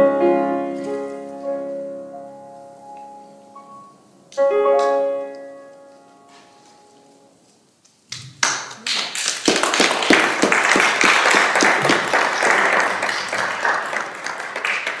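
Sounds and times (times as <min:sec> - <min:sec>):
piano note: 0:00.0 - 0:07.4
congregation applauding: 0:08.4 - 0:15.0.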